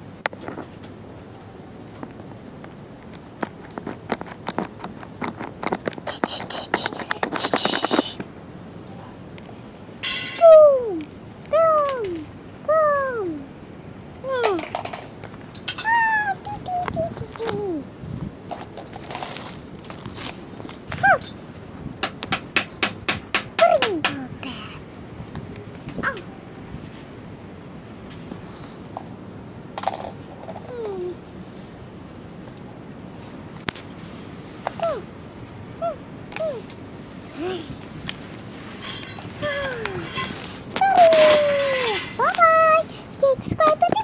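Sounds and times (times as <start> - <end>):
handling clicks and taps: 2.0 - 8.3
plastic bag rustling: 18.5 - 21.0.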